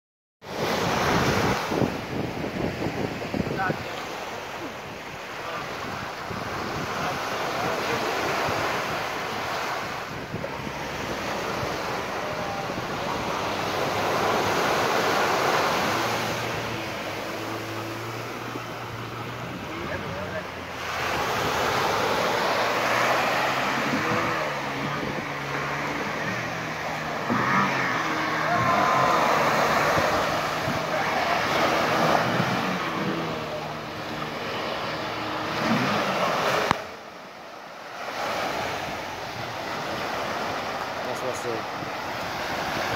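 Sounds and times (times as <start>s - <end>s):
waves breaking on beach: 0.4s - 42.9s
wind buffeting microphone: 0.5s - 37.0s, 38.4s - 42.9s.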